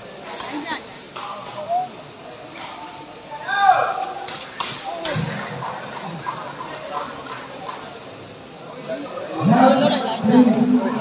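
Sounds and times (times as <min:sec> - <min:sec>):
players and crowd shouting: 0:03.4 - 0:04.2.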